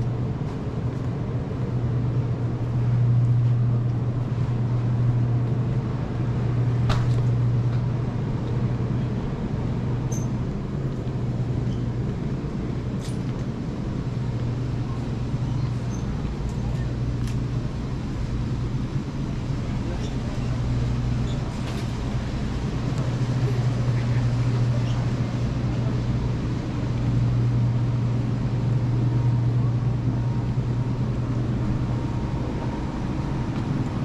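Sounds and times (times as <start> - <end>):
refrigerated display cases humming: 0.0 - 34.0.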